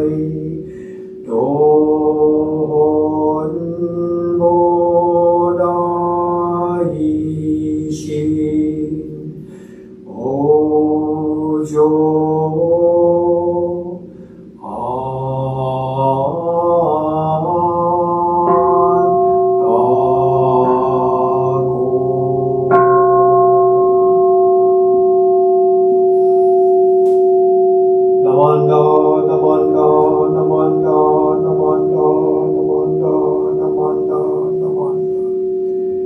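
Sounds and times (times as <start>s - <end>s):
man chanting: 0.0s - 23.1s, 28.2s - 35.5s
bowl bell ringing: 0.0s - 36.0s.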